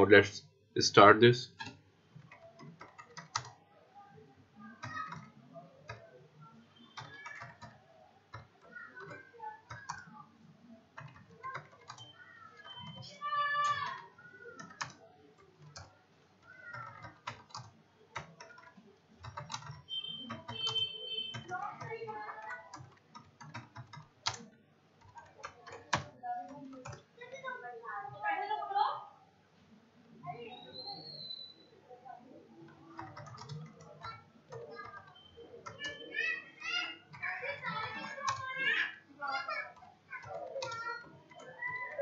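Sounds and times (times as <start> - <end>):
computer keyboard keys clicking: 1.6 - 3.6, 4.6 - 6.2, 6.8 - 10.2, 10.9 - 27.4, 32.6 - 38.8, 39.5 - 42.0
children's voices: 3.8 - 17.6, 21.4 - 23.0, 25.1 - 29.3, 30.2 - 42.0.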